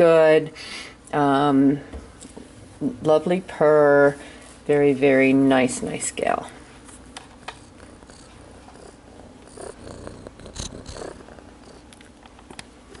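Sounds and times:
cat purring: 7.3s - 12.3s.

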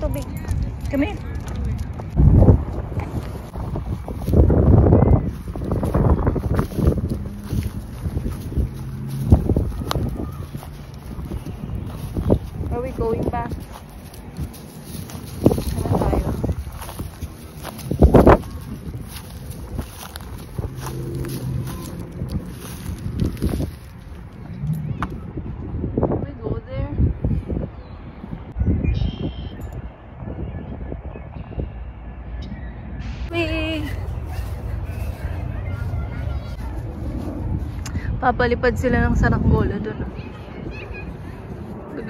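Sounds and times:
wind buffeting microphone: 0.0s - 42.0s.

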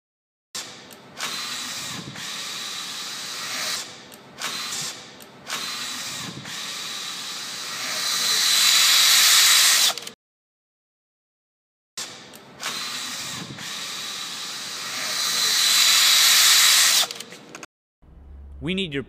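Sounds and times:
drill motors driving carriage: 0.6s - 10.2s, 12.0s - 17.6s.

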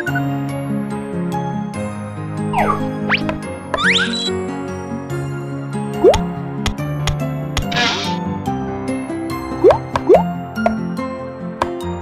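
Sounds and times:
light children's music: 0.0s - 12.0s.

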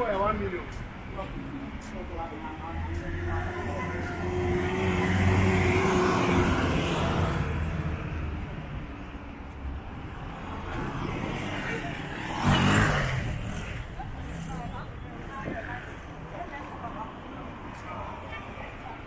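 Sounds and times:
street noise: 0.0s - 19.0s.

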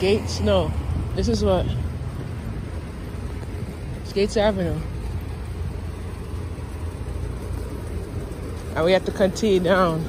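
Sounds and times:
city street rumble: 0.0s - 10.0s.

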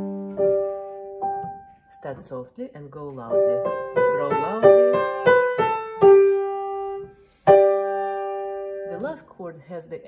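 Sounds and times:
piano note: 0.0s - 2.3s, 3.3s - 9.1s.

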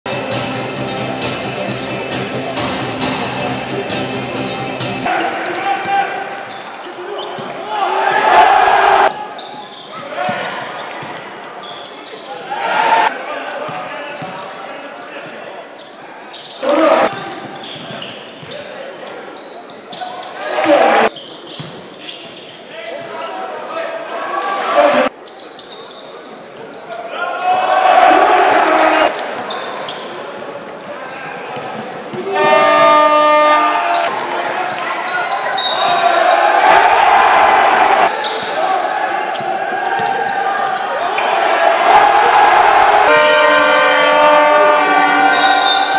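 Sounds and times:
players and crowd voices: 0.1s - 45.9s
buzzer horn: 32.3s - 33.8s, 43.0s - 45.9s.

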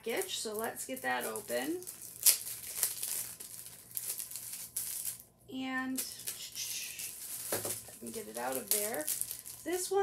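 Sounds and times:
plastic packaging crinkling: 0.0s - 10.0s.

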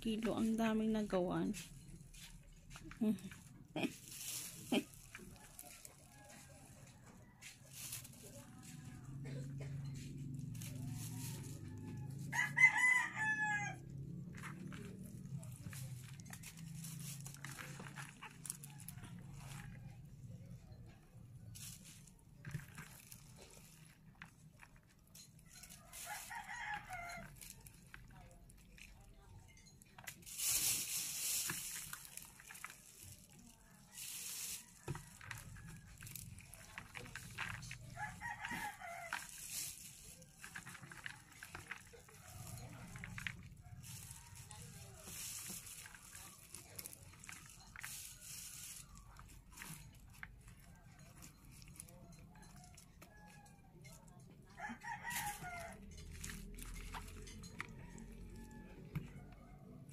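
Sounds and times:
bean sprouts crackling and rustling: 0.0s - 59.9s
rooster crowing: 5.4s - 7.8s, 11.0s - 13.9s, 25.6s - 27.5s, 37.9s - 39.6s, 54.5s - 56.0s, 57.4s - 59.9s.

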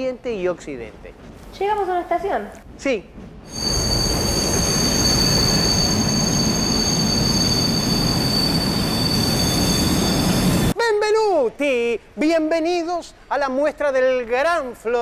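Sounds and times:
high squeal of train brakes: 3.5s - 10.8s.

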